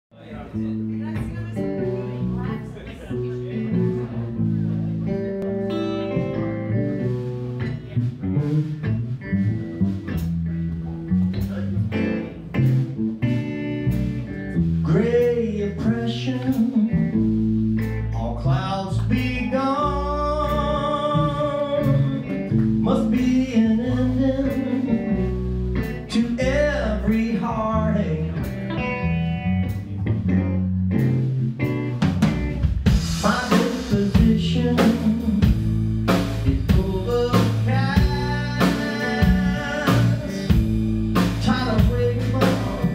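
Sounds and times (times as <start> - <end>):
bass guitar: 0.1 - 42.9
electric guitar: 0.4 - 42.9
drum kit beat: 0.6 - 27.5, 28.2 - 42.9.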